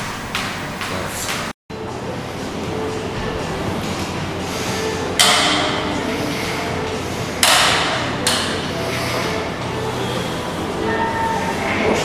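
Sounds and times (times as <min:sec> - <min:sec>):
background music: 0:01.7 - 0:12.0
gym machine metallic clanks: 0:05.1 - 0:06.4, 0:07.3 - 0:09.4.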